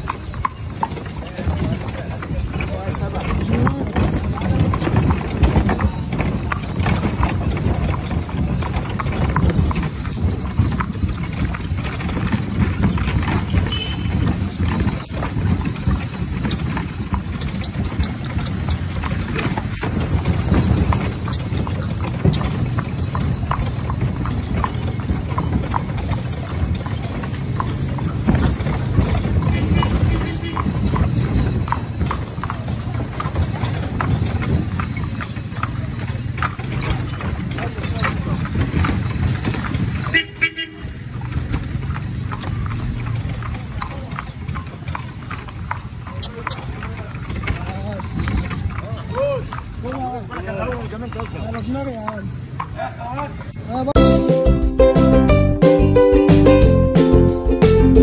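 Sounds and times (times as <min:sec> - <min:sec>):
hooves clip-clopping on dirt: 0:00.0 - 0:55.1.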